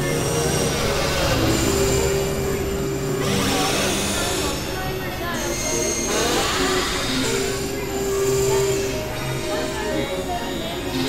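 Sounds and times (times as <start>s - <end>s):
thin high synth tones: 0.0s - 10.8s
grinding synthesizer drone: 0.0s - 11.0s
low held synth tone: 0.0s - 11.0s.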